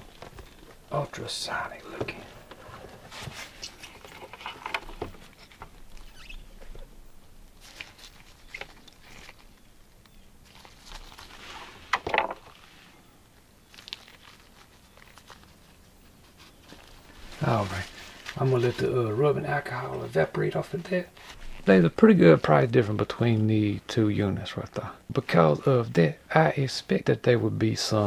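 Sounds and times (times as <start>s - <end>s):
glove rustling: 7.6s - 9.7s, 10.4s - 12.9s, 13.6s - 19.2s.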